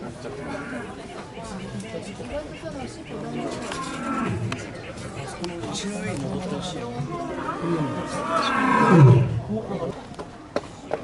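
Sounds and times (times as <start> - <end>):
lion roaring: 7.3 - 9.5.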